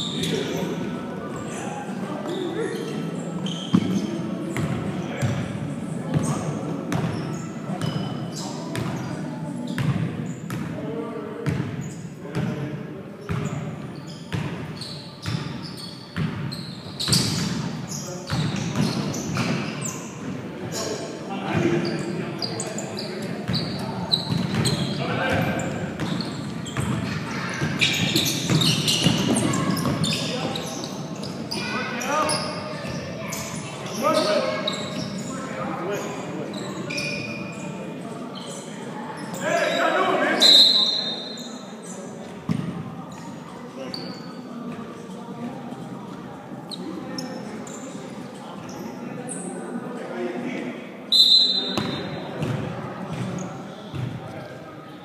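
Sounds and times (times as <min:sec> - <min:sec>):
basketball bouncing on gym floor: 0:06.9 - 0:07.2, 0:09.8 - 0:10.7, 0:11.4 - 0:11.7, 0:26.8 - 0:30.2, 0:51.8 - 0:54.2.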